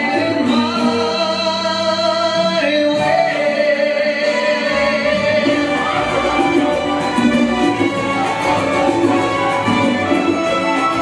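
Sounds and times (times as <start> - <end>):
latin dance music: 0.0 - 11.0.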